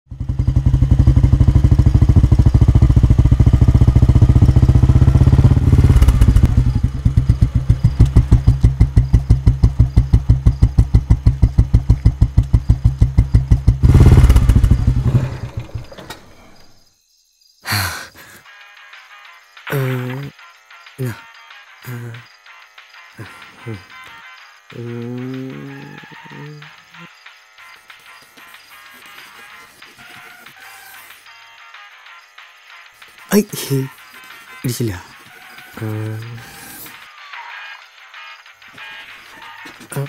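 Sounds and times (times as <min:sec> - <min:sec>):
motorcycle engine idling: 0:00.1 - 0:16.8.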